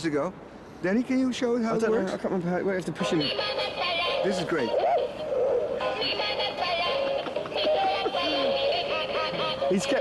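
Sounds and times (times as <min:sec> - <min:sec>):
toy playing electronic song: 0:03.2 - 0:10.0.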